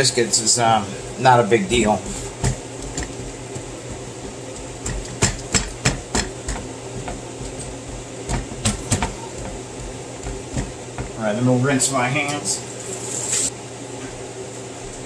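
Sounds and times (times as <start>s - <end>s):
hands patting dough on wood: 1.6s - 11.2s
sharp knocks and taps: 2.4s - 11.2s.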